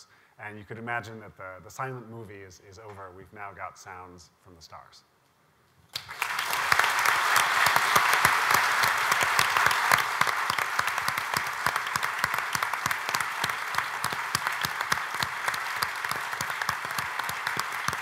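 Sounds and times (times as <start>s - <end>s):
large audience applauding: 5.9s - 18.0s.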